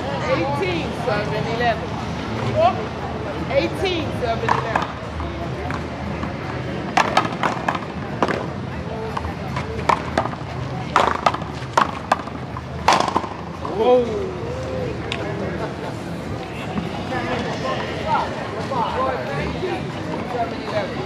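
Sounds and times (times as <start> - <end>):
paddleball hits off paddles and wall: 9.8 - 13.4.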